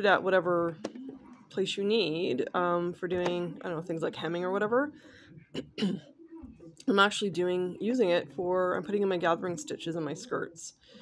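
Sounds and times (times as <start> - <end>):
woman clearing her throat: 5.5 - 6.1.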